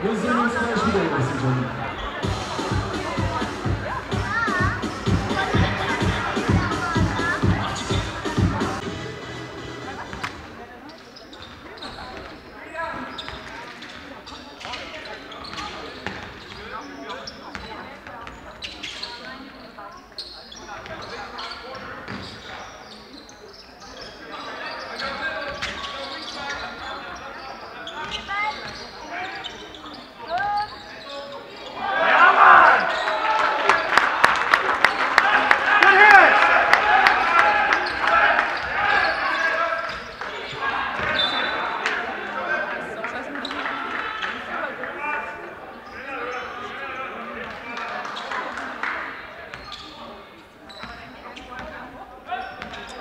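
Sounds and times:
shouts echoing in hall: 0.0s - 8.9s, 31.6s - 50.3s
basketball bouncing on court: 15.4s - 16.6s, 17.5s - 18.4s
crowd shouting: 31.8s - 39.8s.

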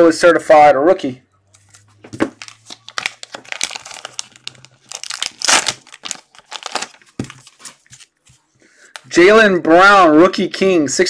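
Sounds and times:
plastic wrapping crinkling and tearing: 1.6s - 8.2s.

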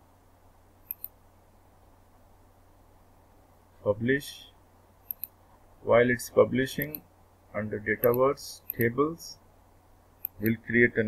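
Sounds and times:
faint steady hum: 0.0s - 11.0s
mouse button clicking: 0.8s - 1.2s, 8.0s - 8.9s.

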